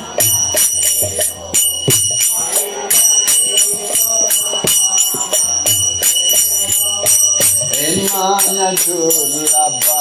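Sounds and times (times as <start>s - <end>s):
hand cymbals struck in rhythm: 0.0s - 10.0s.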